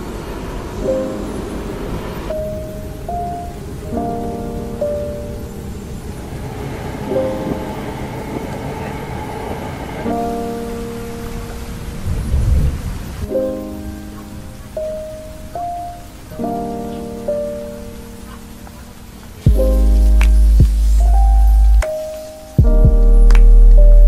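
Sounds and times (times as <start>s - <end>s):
steady rain-like hiss: 0.0s - 24.0s
soft lofi chords: 0.1s - 24.0s.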